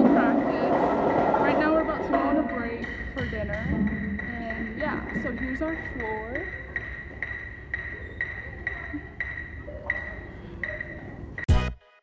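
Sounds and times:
electronic metronome beeping: 1.5s - 11.7s.

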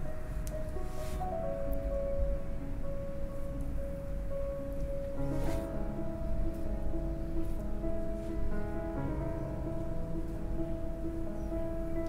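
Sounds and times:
background music of held notes: 0.0s - 12.0s.

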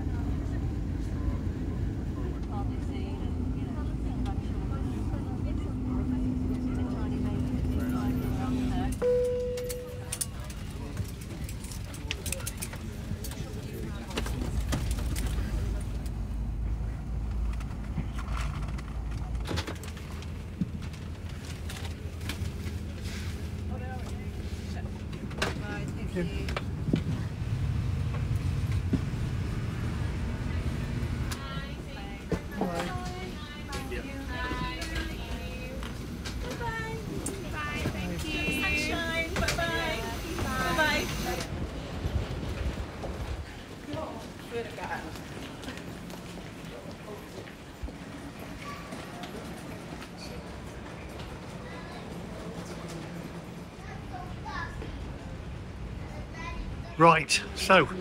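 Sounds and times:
aircraft engine hum and rumble: 0.0s - 57.0s
passengers' voices: 0.0s - 58.0s
short cabin chime: 9.0s - 10.2s.

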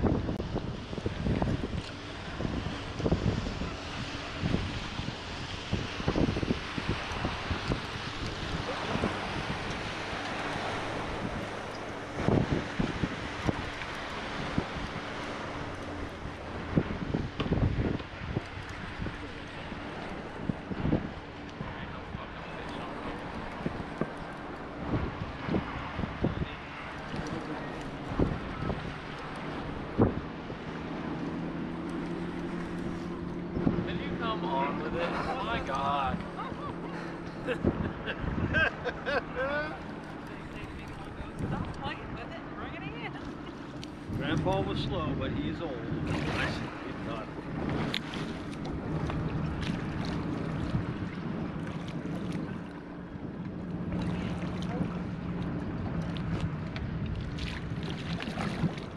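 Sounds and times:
boat motor hum: 0.0s - 58.9s
boat water noise: 0.0s - 58.9s
wind buffeting microphone: 0.0s - 58.9s.

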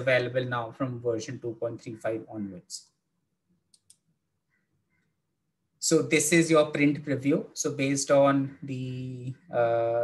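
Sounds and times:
computer mouse clicks: 3.7s - 4.1s.

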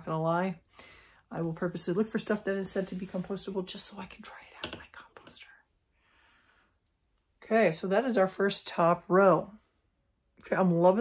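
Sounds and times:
woman whispering: 3.7s - 5.7s.

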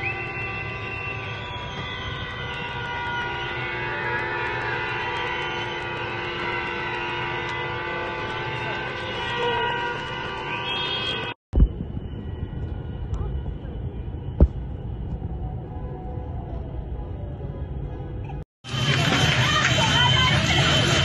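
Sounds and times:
vehicle horns blasting: 0.0s - 11.4s
low street rumble: 0.0s - 21.0s.

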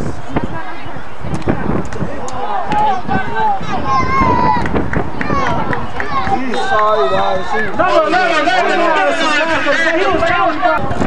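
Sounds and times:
spectators shouting: 0.2s - 11.0s.

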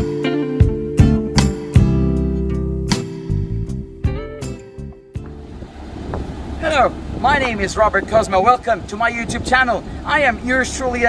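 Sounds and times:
guitar piece: 0.0s - 5.7s
low outdoor rumble: 3.7s - 11.0s
man speaking: 6.6s - 11.0s.

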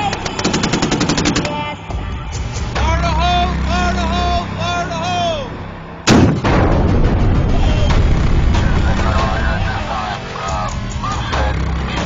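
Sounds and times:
weapon blast with rumbling tail: 6.1s - 9.3s.

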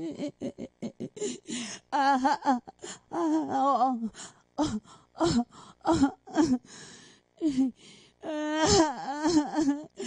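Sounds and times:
woman wailing vocal performance: 0.0s - 6.6s, 7.4s - 10.0s.

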